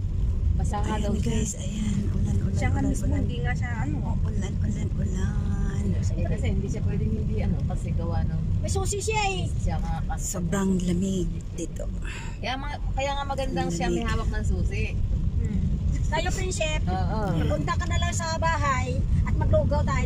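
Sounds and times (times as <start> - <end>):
car driving on flooded road: 0.0 - 20.0
people talking: 0.6 - 20.0.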